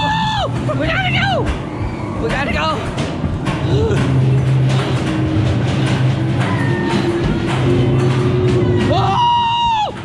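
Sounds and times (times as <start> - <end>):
loud low hum: 0.0 - 9.5.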